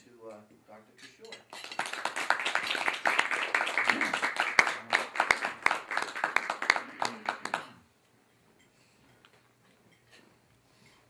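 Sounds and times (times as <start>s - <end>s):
audience applause: 1.7s - 7.8s.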